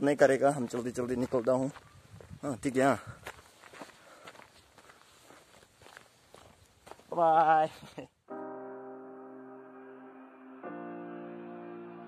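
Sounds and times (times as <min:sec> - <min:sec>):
footsteps on dirt path: 0:00.1 - 0:08.1.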